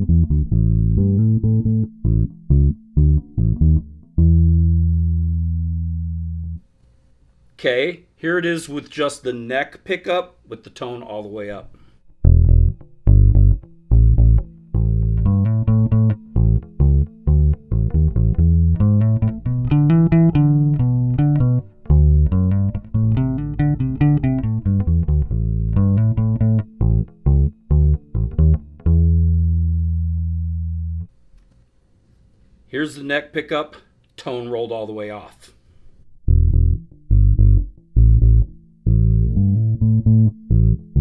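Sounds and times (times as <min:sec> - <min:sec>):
electric bass plucked notes: 0:00.0 - 0:06.6, 0:12.1 - 0:31.1, 0:36.1 - 0:41.0.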